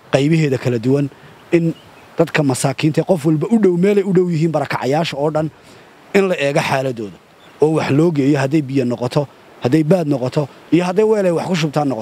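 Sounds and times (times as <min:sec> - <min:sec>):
man speaking: 0:00.1 - 0:12.0.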